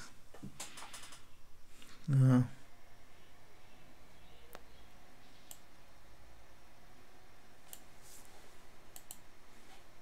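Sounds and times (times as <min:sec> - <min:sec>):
low steady hiss: 0:00.0 - 0:10.0
computer mouse clicks: 0:00.4 - 0:01.3, 0:05.4 - 0:05.7, 0:07.7 - 0:07.9, 0:08.9 - 0:09.2.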